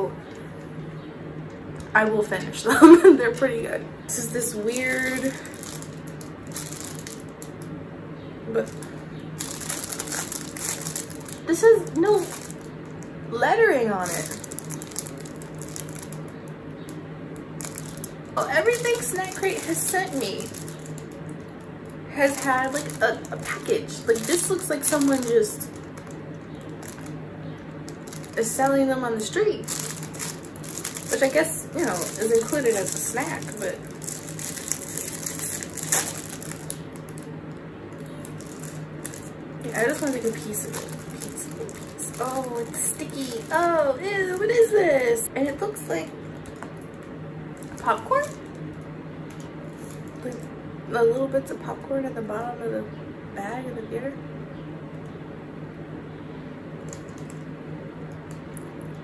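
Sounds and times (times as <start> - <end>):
plastic bag crinkling: 4.1 - 7.8, 8.6 - 13.1, 13.9 - 50.5, 56.8 - 57.5
sharp wrapper crackle: 4.4 - 7.8, 8.6 - 13.2, 14.0 - 50.6, 56.8 - 57.5.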